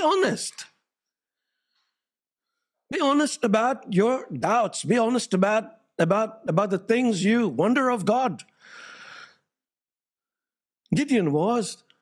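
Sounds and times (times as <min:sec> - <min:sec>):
man speaking: 0:00.0 - 0:00.8, 0:02.9 - 0:08.5, 0:10.9 - 0:11.9
man breathing into microphone: 0:08.6 - 0:09.5.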